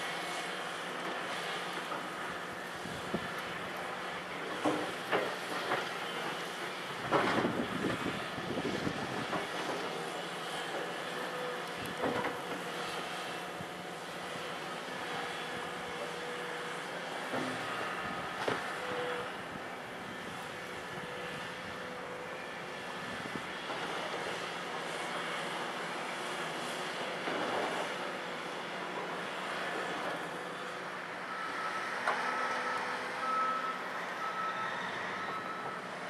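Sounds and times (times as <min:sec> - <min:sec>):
excavator diesel engine running: 0:00.1 - 0:36.0.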